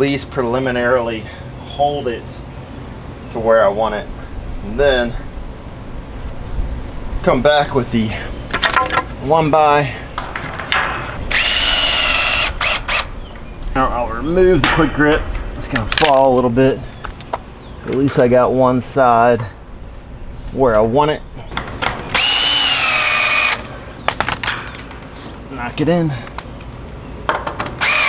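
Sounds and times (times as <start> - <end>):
power drill whine: 11.3 - 13.1, 22.1 - 23.7, 27.8 - 28.0.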